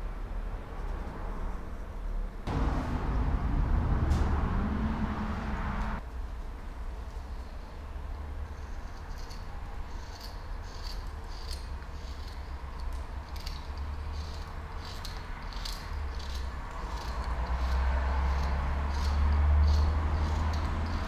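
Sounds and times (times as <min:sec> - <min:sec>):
low rumble: 0:02.5 - 0:06.0.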